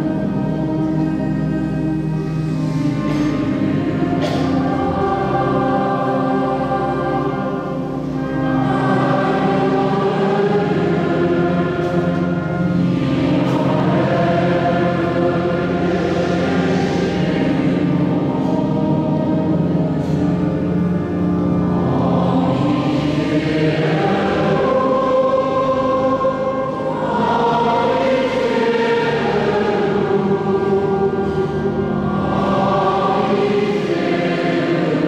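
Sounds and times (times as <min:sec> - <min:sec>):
choir and congregation singing: 0:00.0 - 0:35.0.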